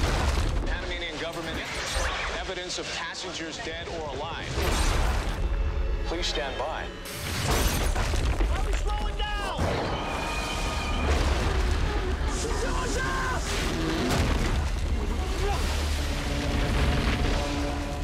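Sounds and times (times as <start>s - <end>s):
dramatic film music: 0.0s - 18.0s.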